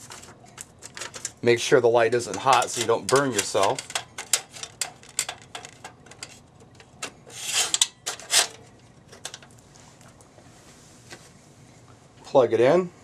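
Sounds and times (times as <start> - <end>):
small metal clicks and taps: 2.3 - 7.1
metal frame scraping slide: 7.3 - 8.6.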